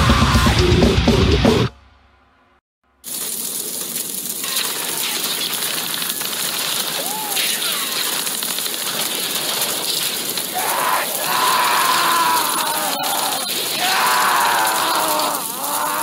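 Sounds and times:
hiss and crackle: 0:03.0 - 0:16.0
drawn-out cry: 0:10.4 - 0:16.0.

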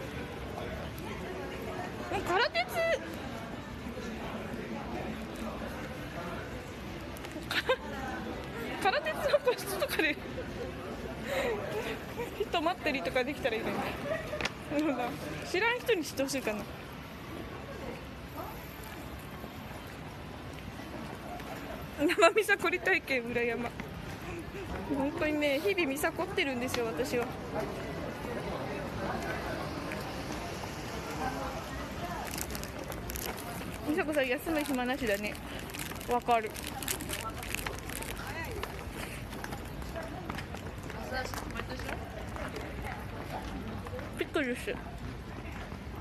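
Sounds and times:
faint voices of passers-by: 0:00.0 - 0:46.0
street background noise: 0:00.0 - 0:46.0.

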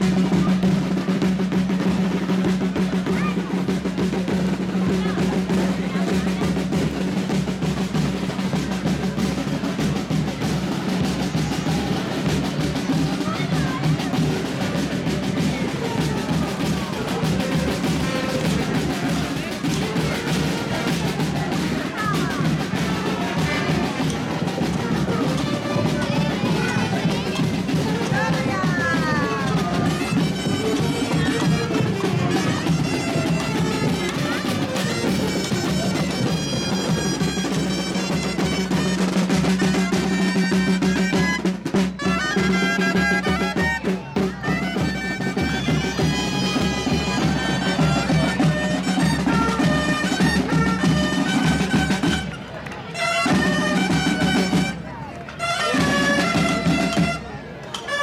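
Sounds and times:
drums beating: 0:00.0 - 0:58.0
shrill double-reed pipes melody: 0:26.8 - 0:43.9, 0:44.5 - 0:52.3, 0:53.0 - 0:54.8, 0:55.4 - 0:58.0.

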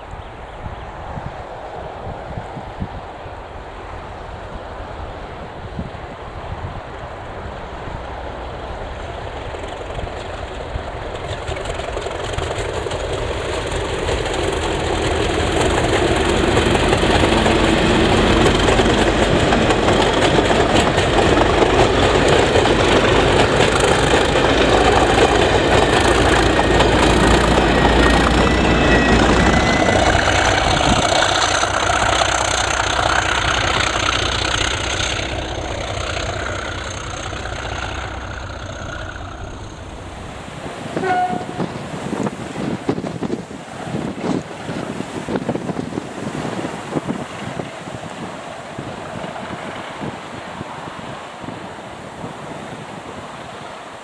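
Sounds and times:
diesel locomotive passing: 0:00.0 - 0:54.0.

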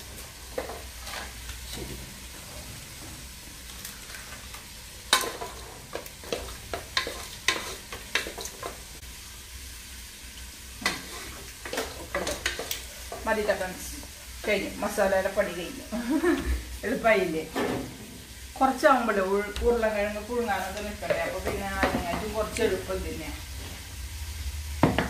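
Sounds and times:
wooden spatula scraping metal pot: 0:05.1 - 0:08.8, 0:10.8 - 0:13.4.

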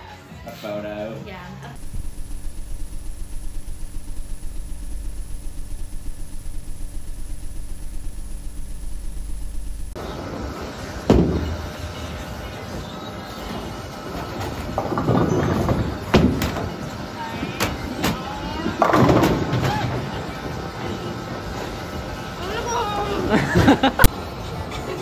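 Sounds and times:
pulsing low rumbling drone: 0:01.8 - 0:10.0.

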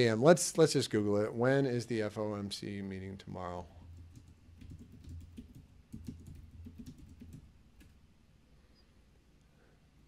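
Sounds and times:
faint low hum: 0:00.0 - 0:10.0
typing on a keyboard: 0:03.9 - 0:08.0.

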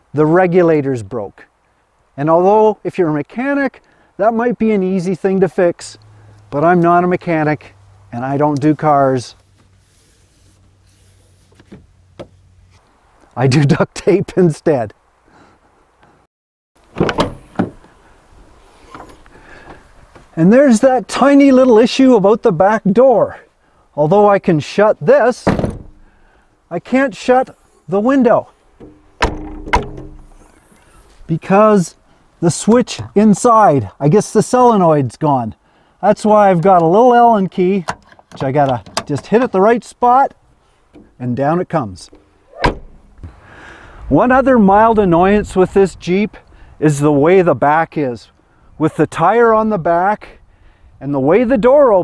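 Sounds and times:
handling noise: 0:16.8 - 0:20.3, 0:25.4 - 0:26.1, 0:27.4 - 0:31.3, 0:42.1 - 0:43.4
car tailgate clunks: 0:16.9 - 0:17.9, 0:25.4 - 0:26.1, 0:28.8 - 0:30.4, 0:42.5 - 0:43.2
liftgate glass shutting thump: 0:17.0 - 0:17.8, 0:25.4 - 0:26.0, 0:28.8 - 0:30.4, 0:42.5 - 0:43.1.

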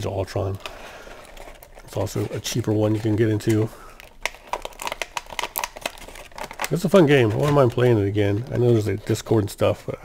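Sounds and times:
plastic wrapping crinkling: 0:00.0 - 0:09.8.

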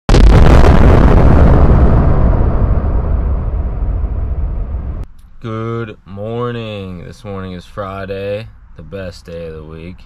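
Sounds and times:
explosion-like blast with crackling: 0:00.1 - 0:05.1.

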